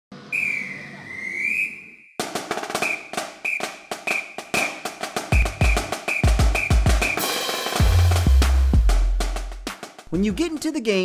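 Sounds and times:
short whistle chirps: 0:00.3 - 0:02.2, 0:02.8 - 0:04.7, 0:05.3 - 0:07.2
whistle with dipping pitch: 0:00.3 - 0:02.2, 0:02.8 - 0:07.2
drum beat: 0:02.2 - 0:11.0
deep bass drum hits: 0:07.8 - 0:09.7.

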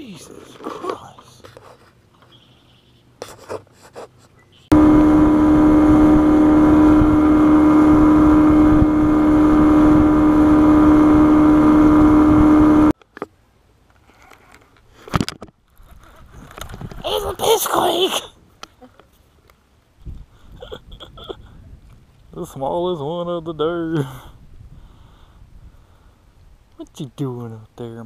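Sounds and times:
outboard motor running: 0:04.7 - 0:13.0.

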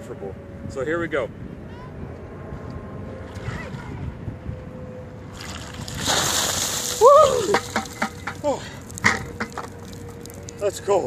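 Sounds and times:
water splashing over person: 0:05.4 - 0:10.6
person crying out: 0:07.0 - 0:07.7.

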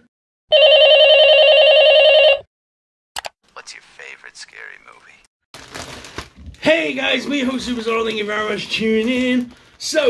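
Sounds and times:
telephone ringing: 0:00.5 - 0:02.5.

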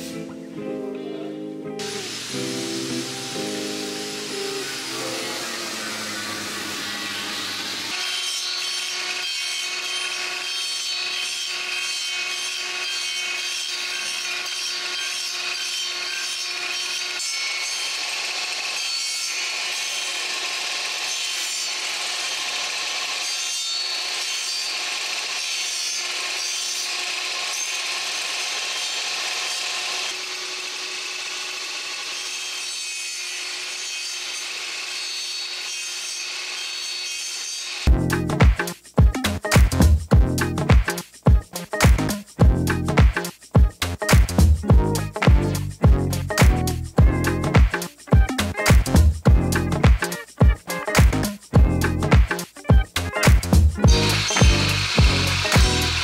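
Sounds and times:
table saw cutting wood: 0:01.8 - 0:56.0.

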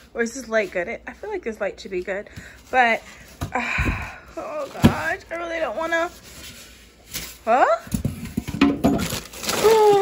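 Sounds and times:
plastic bag crinkling: 0:04.4 - 0:07.8, 0:08.5 - 0:10.0.

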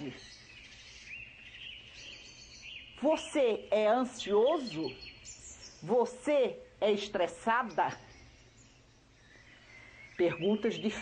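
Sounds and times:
faint bird chirps: 0:00.0 - 0:11.0
steady background hiss: 0:00.0 - 0:11.0.

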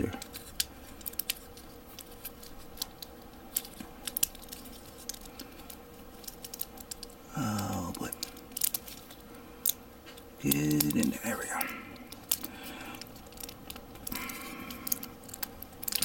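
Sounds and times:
plastic parts clicking: 0:00.0 - 0:11.1, 0:11.9 - 0:16.0.

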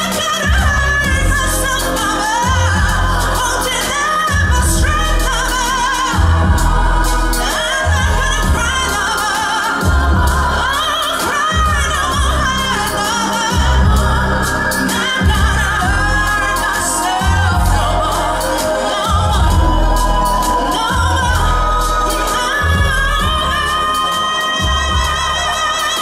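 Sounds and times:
deep bass: 0:00.0 - 0:26.0
keyboards: 0:00.0 - 0:26.0
woman singing: 0:00.0 - 0:26.0.

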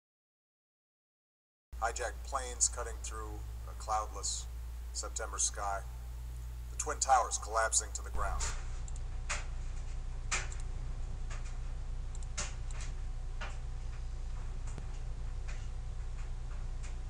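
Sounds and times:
low hum: 0:01.8 - 0:17.0.

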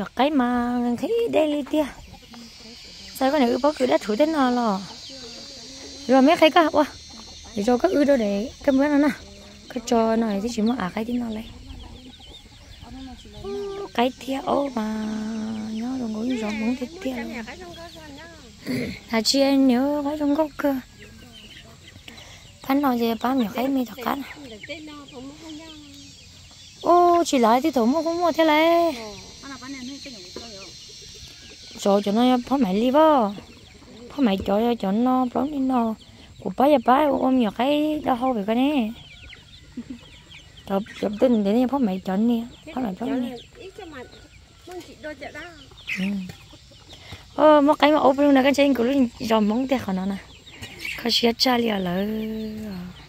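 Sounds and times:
chickens clucking: 0:00.0 - 0:53.0.

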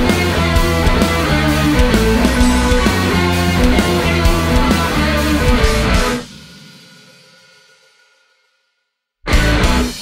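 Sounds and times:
guitar chord ringing: 0:00.0 - 0:06.2
rock band playing loud: 0:00.0 - 0:07.2, 0:09.3 - 0:10.0.

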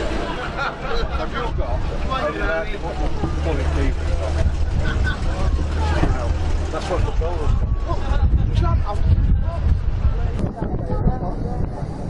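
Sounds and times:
car engine rumble passing slowly: 0:00.0 - 0:08.4
people talking: 0:00.0 - 0:12.0.

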